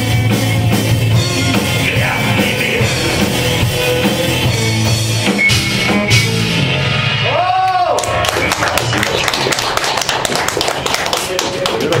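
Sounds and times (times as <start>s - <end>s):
audience applauding: 7.6s - 12.0s.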